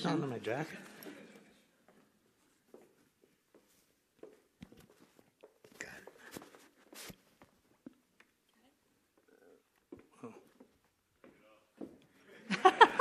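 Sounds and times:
clothing rustling: 0.7s - 8.0s.

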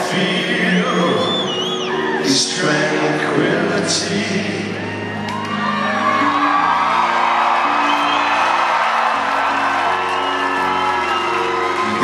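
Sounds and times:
crowd whooping and cheering: 0.5s - 2.7s, 4.4s - 12.0s.

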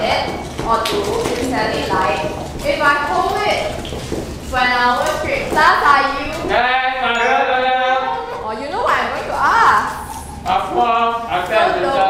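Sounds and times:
person speaking: 5.5s - 10.8s.

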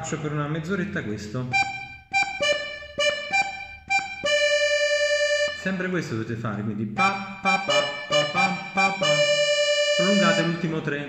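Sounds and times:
button accordion short notes: 1.5s - 5.8s, 7.0s - 10.8s.

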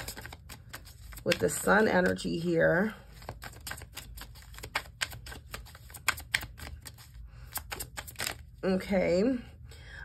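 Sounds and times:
cards being shuffled: 0.0s - 8.6s.

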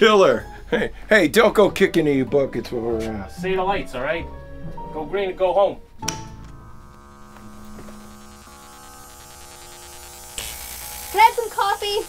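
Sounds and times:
steady electric hum: 5.6s - 12.0s
wall switch clicking: 6.0s - 6.5s
hiss: 10.4s - 12.0s.

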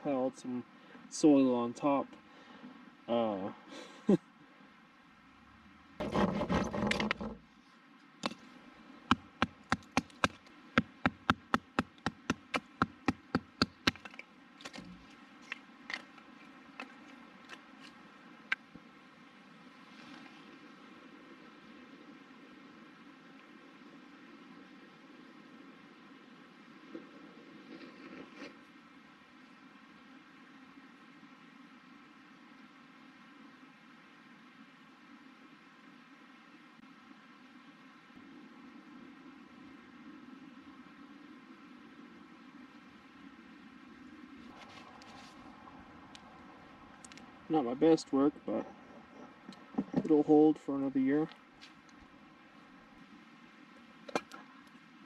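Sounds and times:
handling noise: 6.0s - 7.4s.

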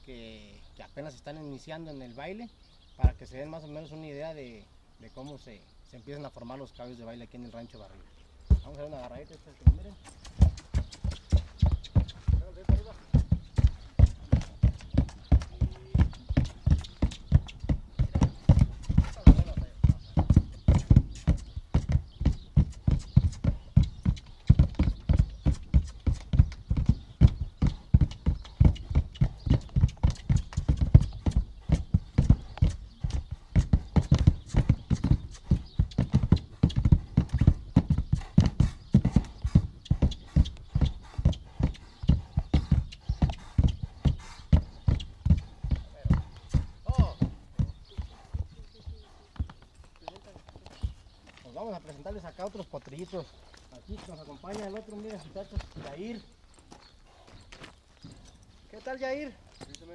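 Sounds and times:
horse hooves stamping on planks: 3.0s - 3.5s, 8.5s - 59.9s.

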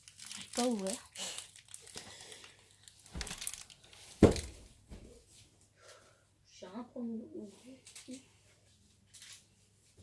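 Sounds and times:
food packaging crinkling: 0.0s - 4.5s.

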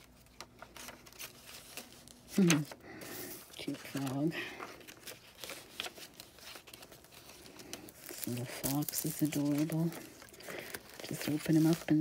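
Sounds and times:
paper rustling: 0.0s - 12.0s.

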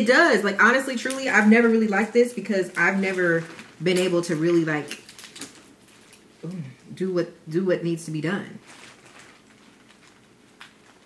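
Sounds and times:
crab shell cracking in plastic bag: 2.7s - 6.3s, 8.6s - 11.0s.

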